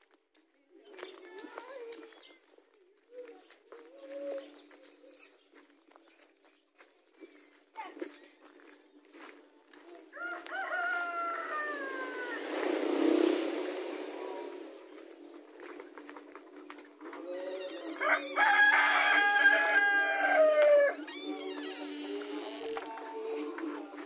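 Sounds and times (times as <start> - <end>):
rooster crowing: 10.2 - 12.6, 17.6 - 21.1.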